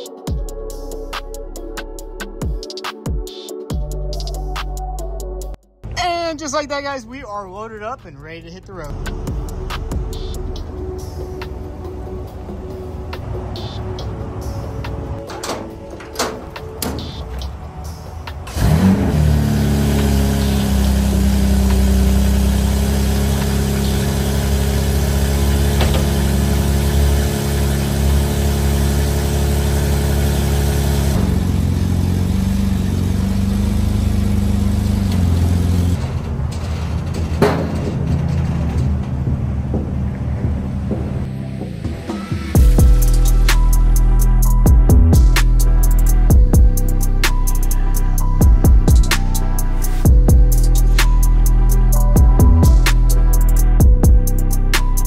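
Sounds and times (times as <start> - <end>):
car engine idling: 6.3 - 55.0
car engine starting: 7.5 - 55.0.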